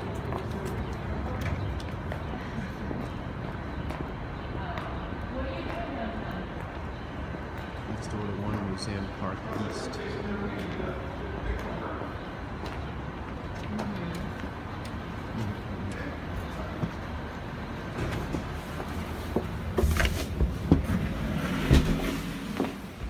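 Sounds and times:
traffic-like background noise: 0.0s - 23.0s.

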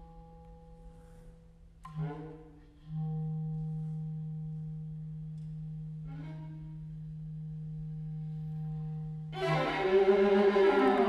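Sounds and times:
clarinet holding long low note: 1.9s - 11.0s.

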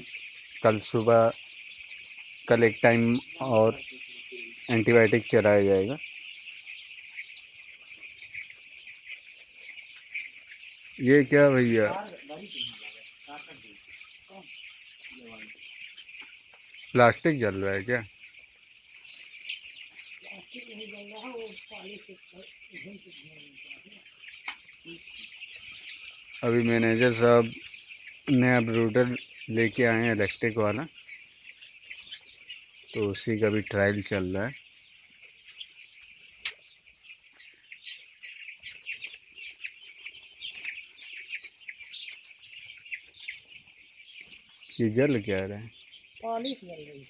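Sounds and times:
chicks peeping: 0.0s - 47.0s.

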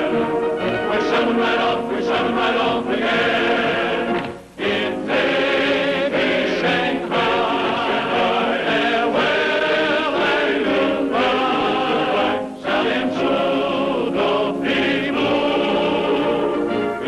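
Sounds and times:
choir singing: 0.0s - 17.0s.

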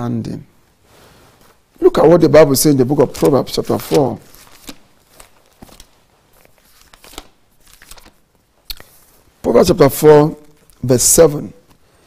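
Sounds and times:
paper rustling: 2.4s - 9.3s.

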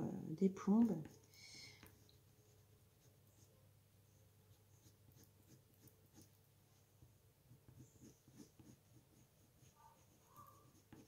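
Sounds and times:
pencil scratching on paper: 1.0s - 6.4s, 7.5s - 11.0s.

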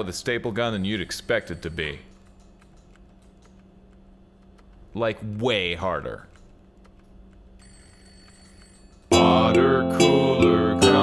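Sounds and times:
steady low hum: 0.0s - 11.0s
faint clicks: 2.1s - 4.9s.

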